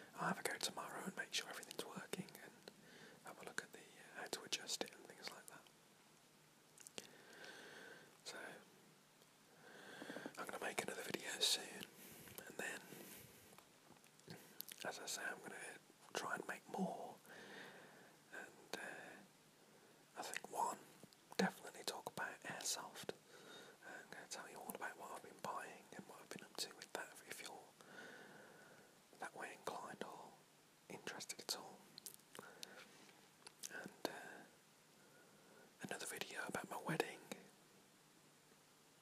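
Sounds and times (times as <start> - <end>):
man whispering: 0.0 - 5.7, 8.2 - 8.7, 9.9 - 13.2, 14.2 - 17.3, 18.3 - 19.3, 20.1 - 23.2, 23.8 - 27.8, 29.2 - 34.6, 35.8 - 37.5.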